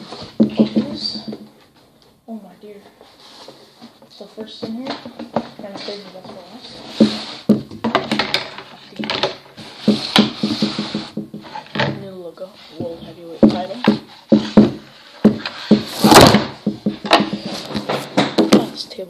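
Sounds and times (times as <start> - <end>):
rustling scrape: 2.7 - 4.8, 5.4 - 7.5, 8.4 - 16.4, 17.3 - 18.3.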